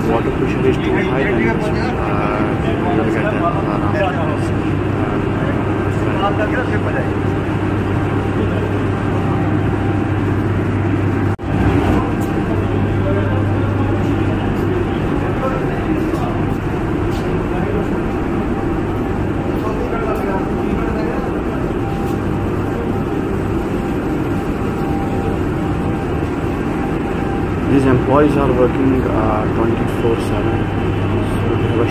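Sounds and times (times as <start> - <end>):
loud machinery drone: 0.0 - 31.9
low hum: 0.0 - 31.9.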